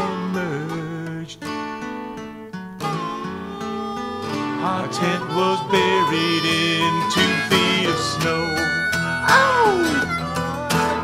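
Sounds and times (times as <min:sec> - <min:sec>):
person singing: 0:00.0 - 0:01.4, 0:02.9 - 0:11.0
acoustic guitar strummed: 0:00.0 - 0:11.0
held melodic note: 0:02.8 - 0:11.0.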